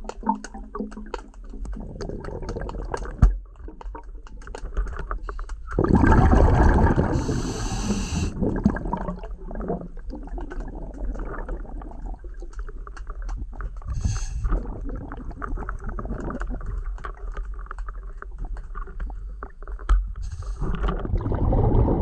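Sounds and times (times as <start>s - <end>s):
low underwater rumble: 1.5s - 22.0s
rushing bubbling burst: 5.7s - 11.9s, 20.4s - 22.0s.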